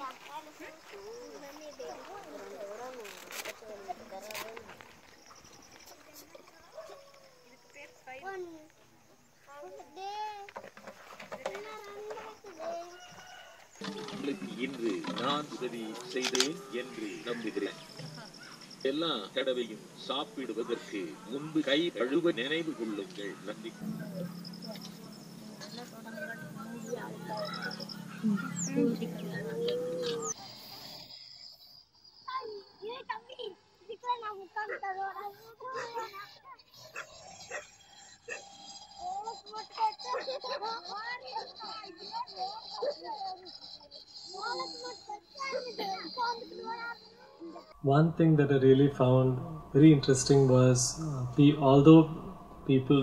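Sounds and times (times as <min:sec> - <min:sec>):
children calling and chattering: 0:00.0 - 0:53.0
chicken calling: 0:23.3 - 0:30.4.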